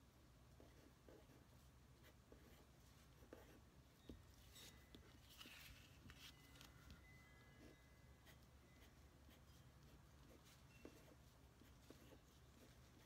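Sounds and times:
pen scratching on paper: 0:00.6 - 0:03.7, 0:07.6 - 0:13.0.

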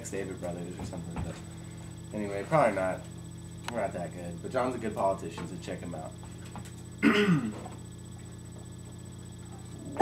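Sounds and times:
man clearing his throat: 0:07.0 - 0:07.8.

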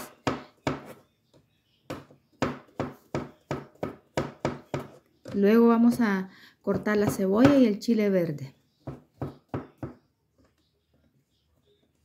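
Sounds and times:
knife chopping on cutting board: 0:00.0 - 0:01.0, 0:01.9 - 0:05.4.

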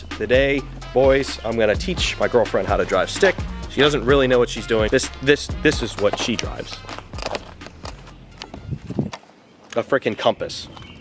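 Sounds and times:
footsteps on asphalt: 0:04.6 - 0:09.8.

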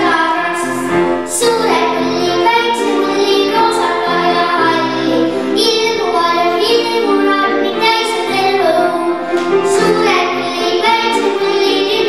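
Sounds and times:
girl singing into a microphone: 0:00.0 - 0:12.0
instrumental accompaniment: 0:00.0 - 0:12.0.

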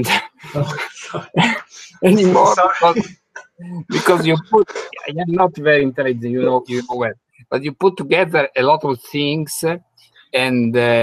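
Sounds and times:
person laughing over video call: 0:00.0 - 0:07.1.

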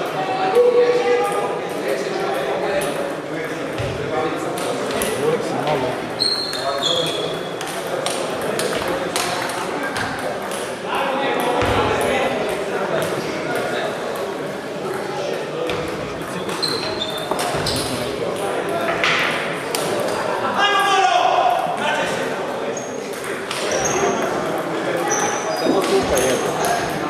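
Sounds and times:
people talking: 0:23.2 - 0:27.0.

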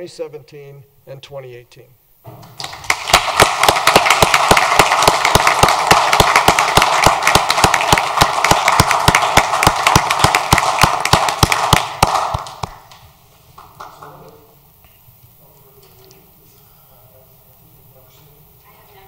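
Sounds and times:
audience applauding: 0:02.4 - 0:14.3.

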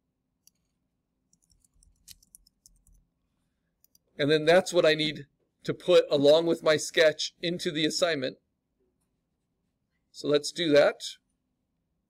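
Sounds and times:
computer keyboard and mouse clicks: 0:00.4 - 0:00.7, 0:01.3 - 0:03.0.

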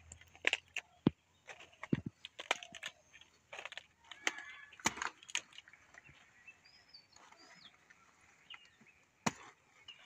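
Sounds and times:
bird chirps: 0:04.2 - 0:10.0.

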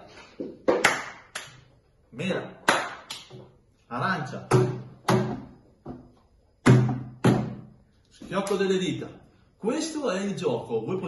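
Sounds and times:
hands slapping and clapping: 0:00.5 - 0:01.7, 0:02.6 - 0:03.5.

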